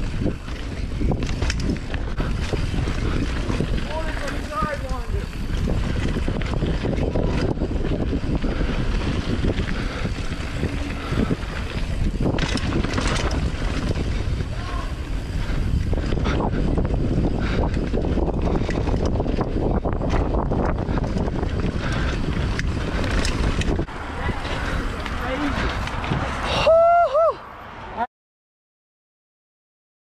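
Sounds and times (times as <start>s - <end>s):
bike rattling and knocking: 0.0s - 26.6s
tyres rolling on dirt and rocks: 0.0s - 26.6s
wind rushing over microphone: 0.0s - 28.0s.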